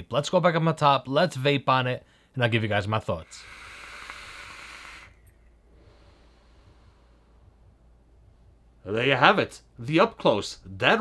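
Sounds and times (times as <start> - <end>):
vape airflow hiss: 3.2 - 7.2.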